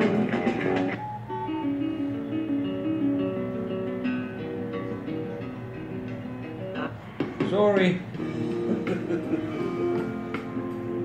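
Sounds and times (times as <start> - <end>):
plucked guitar notes: 0.0 - 7.4.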